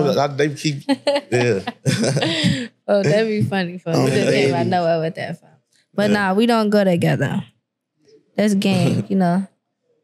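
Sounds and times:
people laughing: 0.0 - 4.8
person speaking: 0.0 - 5.4, 6.0 - 7.4, 8.3 - 9.4.

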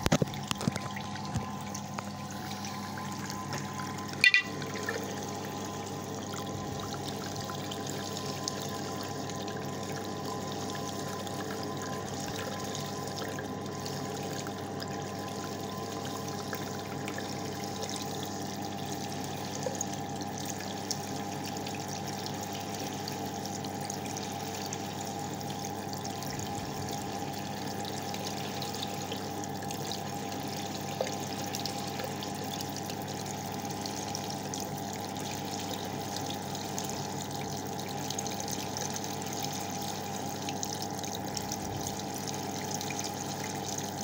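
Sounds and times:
tap water splashing into sink: 0.0 - 2.1, 3.4 - 5.2.

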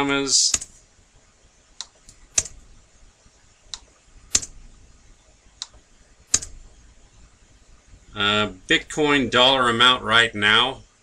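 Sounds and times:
computer keyboard key clicks: 4.3 - 4.5, 6.3 - 6.6.

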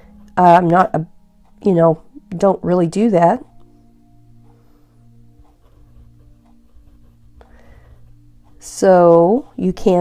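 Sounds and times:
fountain pen scratching on paper: 5.4 - 10.0.

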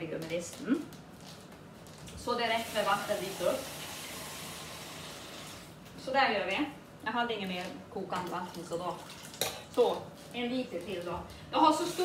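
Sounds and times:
tap water running into jug: 2.5 - 5.7.

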